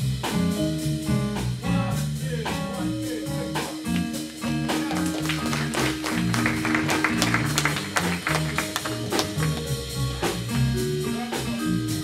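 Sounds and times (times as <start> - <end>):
piano chords: 0.0 - 12.0
walking bass line: 0.0 - 12.0.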